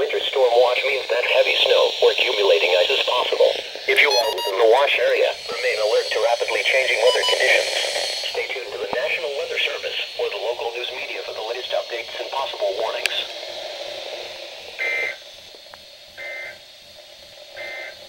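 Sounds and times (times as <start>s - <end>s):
synthesized voice on radio: 0.0s - 13.3s
shrill data bursts: 0.0s - 16.8s, 17.5s - 18.0s.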